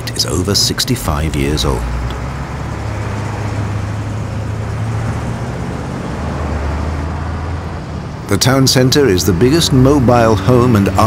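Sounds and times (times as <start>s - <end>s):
low engine hum: 0.0s - 11.0s
passing vehicles rushing: 0.0s - 11.0s.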